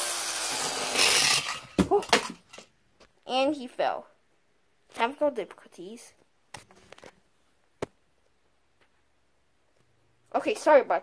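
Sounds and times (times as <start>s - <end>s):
spinning top whirring: 0.0s - 1.8s.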